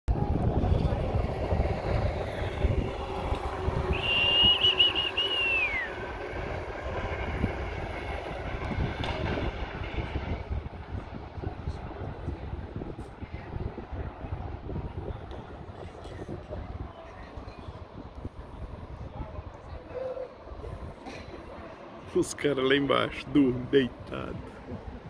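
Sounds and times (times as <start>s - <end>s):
faint voices: 0.1s - 4.1s, 5.0s - 25.0s
wind buffeting microphone: 0.1s - 25.0s
high warbling whistle: 3.7s - 6.2s.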